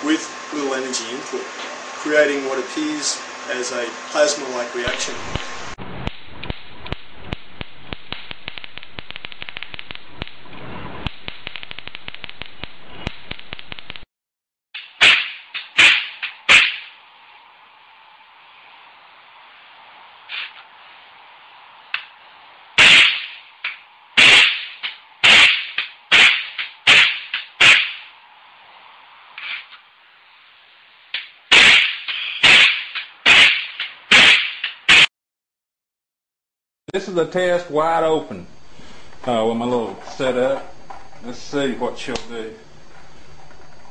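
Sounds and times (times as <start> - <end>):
electric buzz: 0.0 - 14.1, 14.8 - 35.1, 37.0 - 43.9
sharp spark cracks: 4.8 - 14.0, 14.8 - 17.0, 20.3 - 20.6, 22.8 - 28.2, 29.4 - 29.8, 31.1 - 35.1
electric sparks clicking: 4.9 - 14.1, 14.8 - 16.9, 22.8 - 28.1, 31.1 - 35.1.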